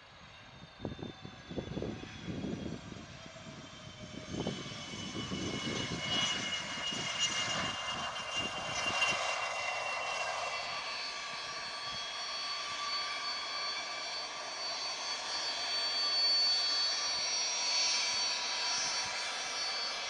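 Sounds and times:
jet engines whining: 0.0 - 20.0.

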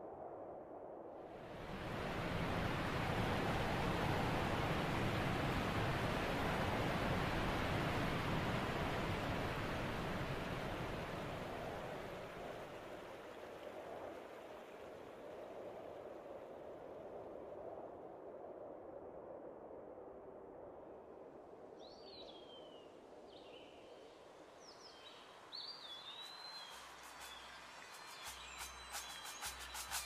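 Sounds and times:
soft rushing noise: 1.3 - 17.4, 25.4 - 30.0.

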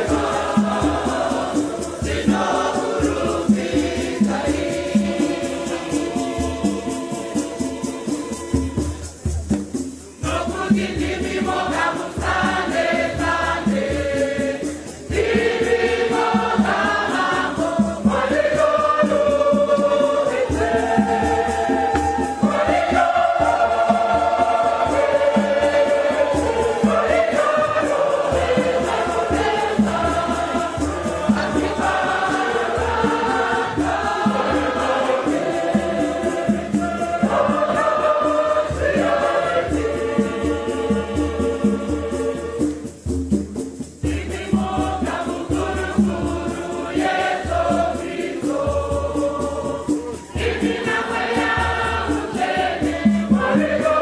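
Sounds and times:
choir singing a hymn: 0.0 - 54.0
steady drum beat: 0.0 - 54.0.

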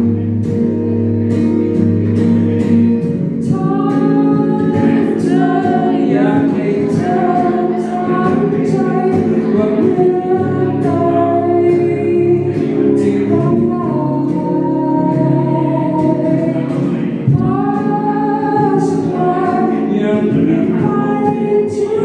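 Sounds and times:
electric guitar strumming: 0.0 - 22.0
person singing into microphone: 0.0 - 22.0.

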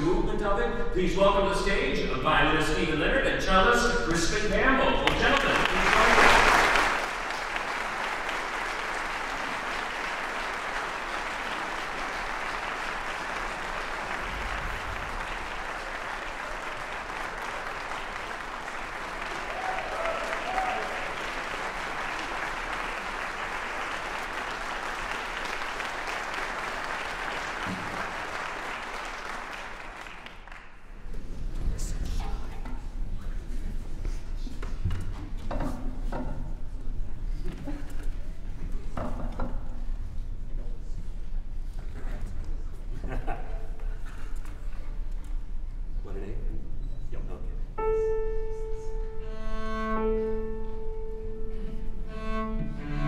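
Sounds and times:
audience applauding: 4.8 - 31.2.

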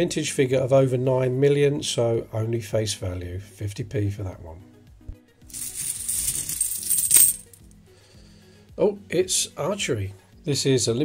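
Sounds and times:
coins jingling in cloth bag: 5.5 - 7.6.

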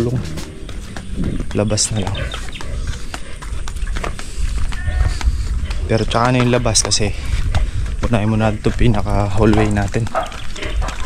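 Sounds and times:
footsteps walking: 0.0 - 11.0
wind buffeting microphone: 0.0 - 11.0.

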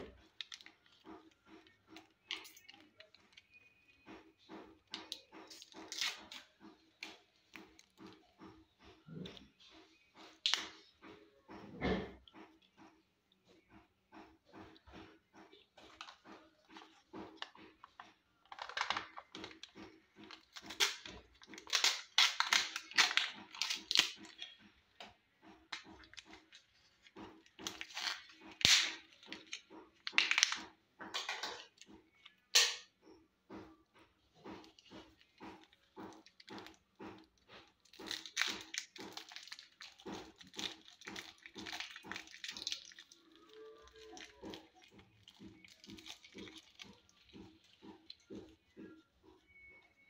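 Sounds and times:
plastic packaging crinkling: 15.8 - 24.6, 34.7 - 48.6.

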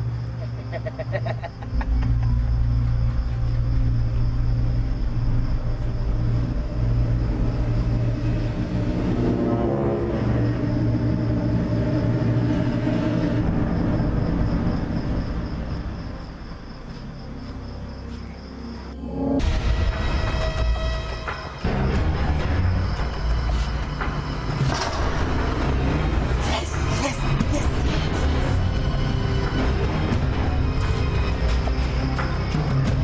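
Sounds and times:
vehicle engine rumbling: 1.7 - 16.4.

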